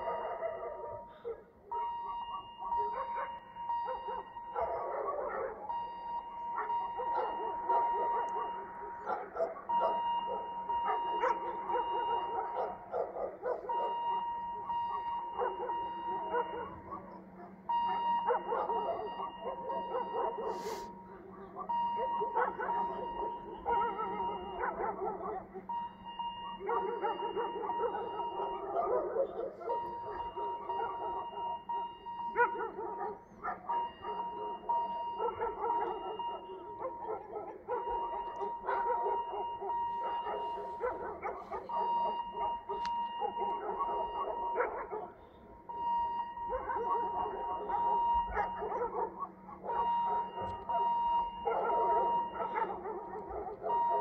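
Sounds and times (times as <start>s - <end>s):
dogs barking and yelping: 0.0s - 54.0s.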